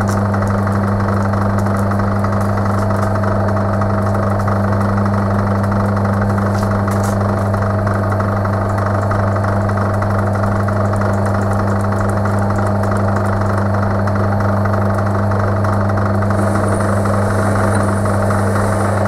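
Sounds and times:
metal lathe motor humming: 0:00.0 - 0:19.0.

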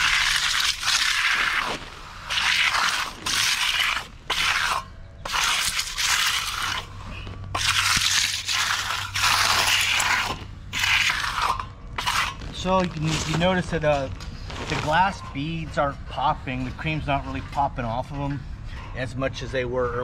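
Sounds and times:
steel trowel scraping concrete: 0:00.0 - 0:19.6.

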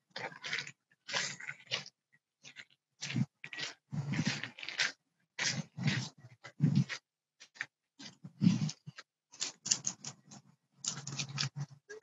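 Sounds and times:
rustling and crunching of carried phone: 0:00.0 - 0:12.0.

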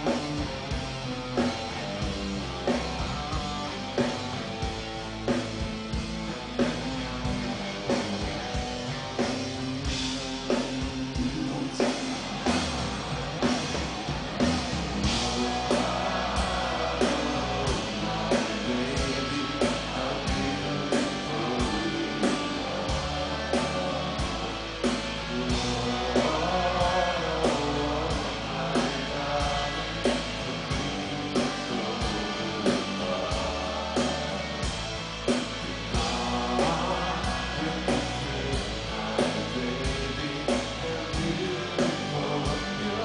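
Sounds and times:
live rock band: 0:00.0 - 0:43.0
man singing: 0:09.9 - 0:12.8, 0:14.8 - 0:34.7, 0:35.3 - 0:43.0.

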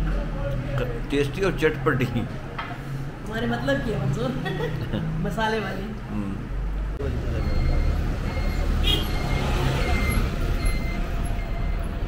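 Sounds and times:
vehicle engines rumbling: 0:00.0 - 0:12.0.

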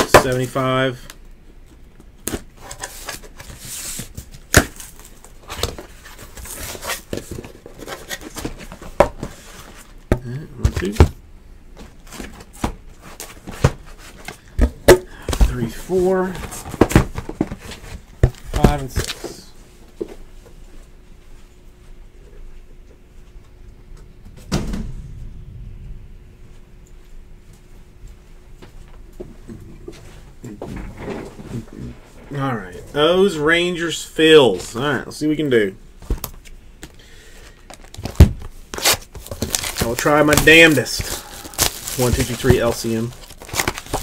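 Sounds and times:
faint steady hum: 0:00.0 - 0:44.0
cardboard rustling and scraping: 0:02.6 - 0:10.0, 0:15.3 - 0:19.4, 0:29.9 - 0:34.8, 0:38.0 - 0:44.0.

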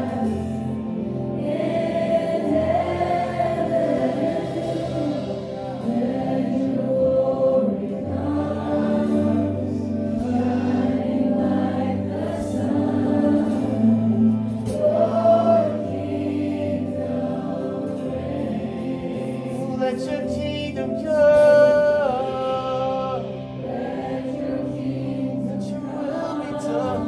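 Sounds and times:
voices singing together: 0:00.0 - 0:27.0.

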